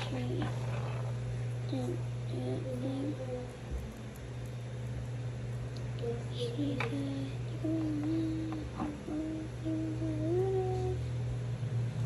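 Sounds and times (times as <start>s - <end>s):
steady low hum: 0.0s - 12.0s
person humming a tune: 6.0s - 11.1s.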